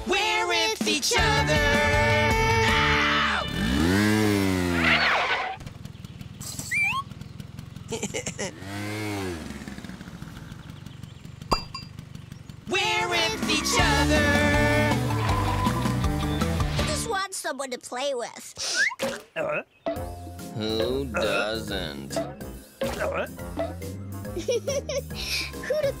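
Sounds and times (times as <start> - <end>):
children's song: 0.0 - 2.9, 12.7 - 15.2.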